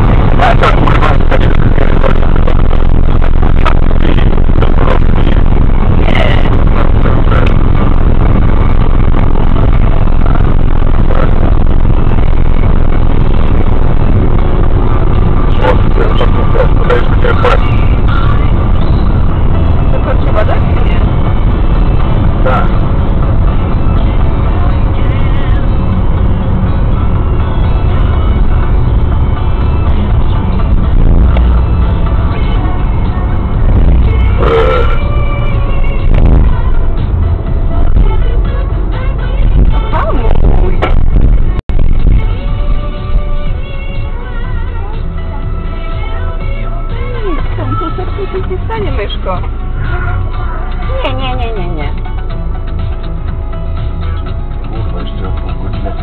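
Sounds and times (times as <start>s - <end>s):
voices on radio: 0.0s - 7.8s, 15.4s - 18.8s, 34.1s - 35.1s
radio playing music: 0.0s - 56.0s
road and engine noise in car: 0.0s - 56.0s.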